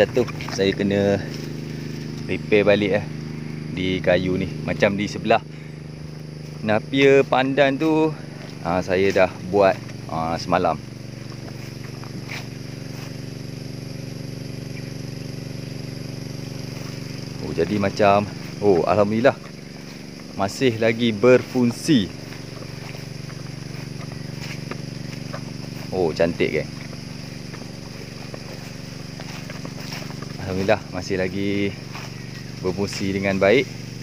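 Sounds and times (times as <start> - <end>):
small petrol engine running: 0.0 - 34.0.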